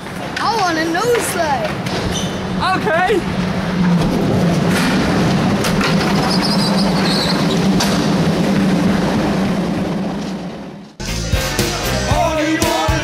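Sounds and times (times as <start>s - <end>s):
skateboard wheels rolling on concrete: 0.0s - 11.6s.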